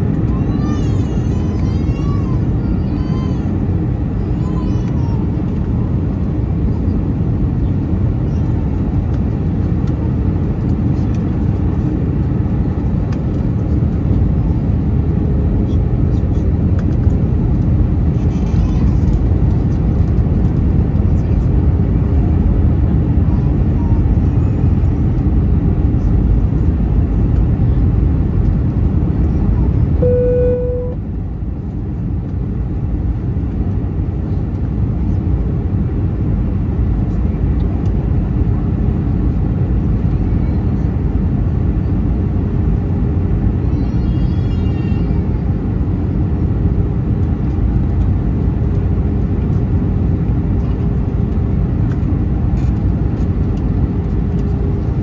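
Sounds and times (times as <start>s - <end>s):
airliner cabin rumble: 0.0s - 55.0s
short single tone: 30.0s - 31.0s.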